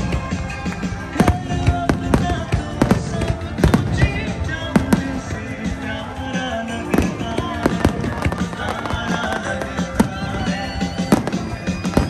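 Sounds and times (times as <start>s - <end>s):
fireworks bursting: 0.0s - 12.0s
music playing: 0.0s - 12.0s.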